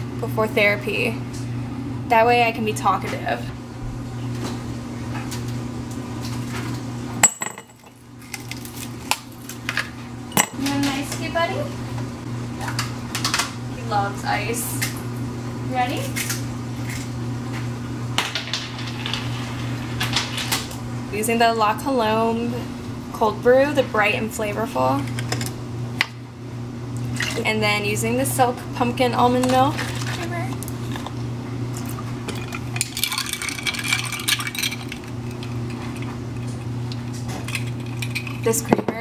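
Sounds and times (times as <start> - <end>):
steady low hum: 0.0 - 39.0
liquid pouring: 31.8 - 38.4
ice cubes clattering: 32.3 - 36.1.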